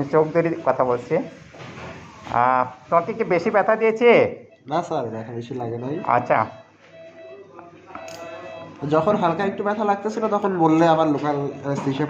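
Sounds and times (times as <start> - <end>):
man talking: 8.8 - 12.0.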